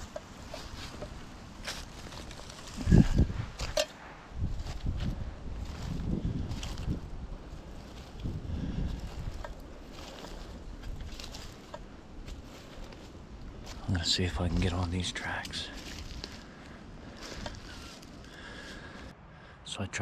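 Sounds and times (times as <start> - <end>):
footsteps through dry leaves: 0.0 - 3.8, 4.4 - 19.1
wind on microphone: 2.7 - 13.8.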